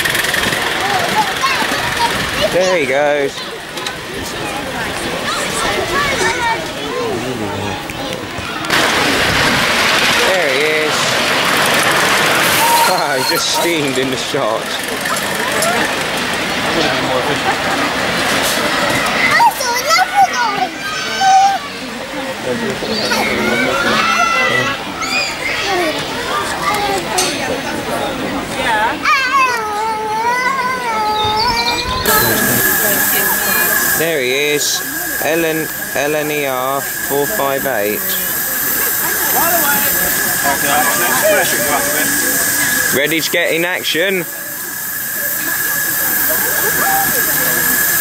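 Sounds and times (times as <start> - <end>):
steam locomotive hissing steam: 0.0 - 48.0
child's high drawn-out voice: 19.1 - 21.9, 23.0 - 27.2, 28.8 - 32.7.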